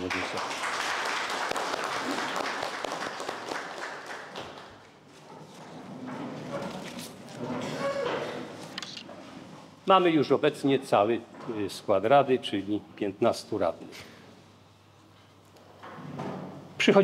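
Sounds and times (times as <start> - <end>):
crowd applauding: 0.0 - 4.9.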